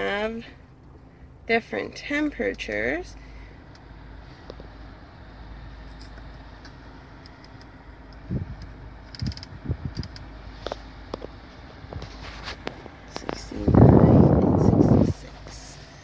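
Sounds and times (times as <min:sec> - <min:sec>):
car cabin hum: 0:00.0 - 0:16.0.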